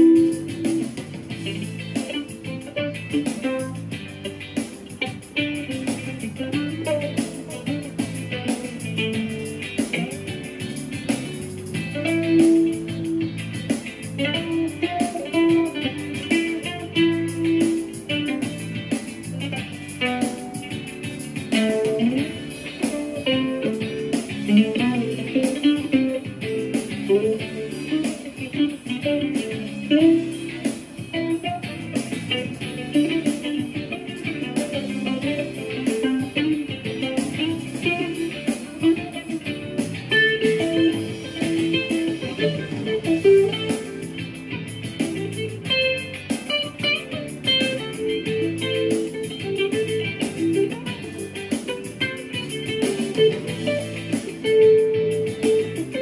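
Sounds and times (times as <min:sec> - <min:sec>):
backing track chords and bass: 0:00.0 - 0:56.0.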